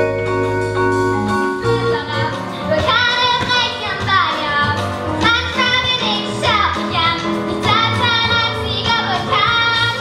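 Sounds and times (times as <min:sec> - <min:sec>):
instrumental accompaniment with bass: 0:00.0 - 0:10.0.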